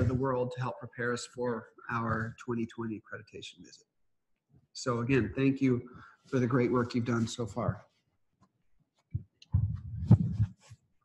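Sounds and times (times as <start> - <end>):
microphone handling thumps: 9.1 - 10.8.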